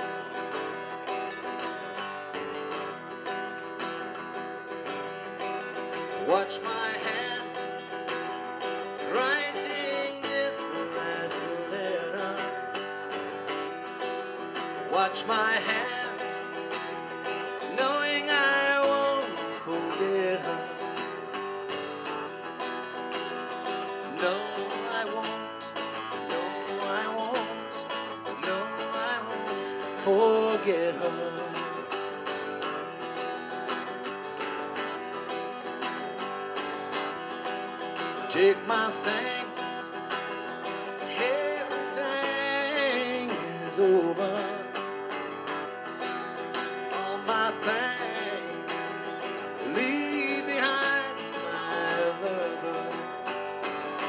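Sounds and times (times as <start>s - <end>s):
acoustic guitar playing slowly: 0.0s - 54.0s.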